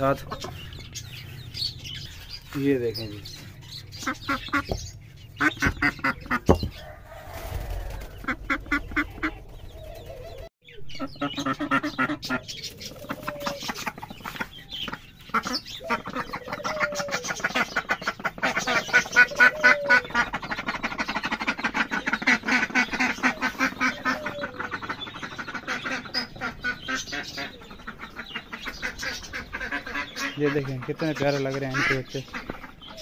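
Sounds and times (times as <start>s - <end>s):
ducklings peeping: 0.0s - 33.0s.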